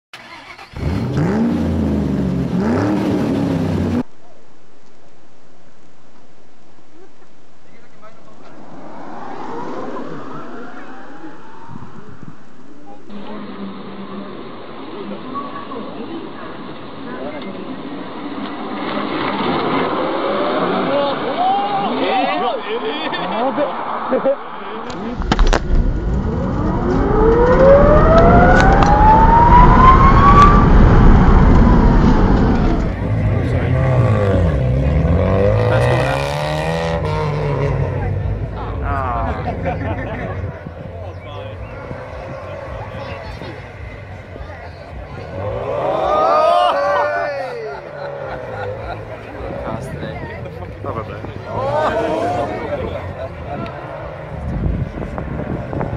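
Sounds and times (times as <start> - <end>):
tyre noise on road: 0.2 - 55.9
voices: 6.9 - 25.4, 26.2 - 55.9.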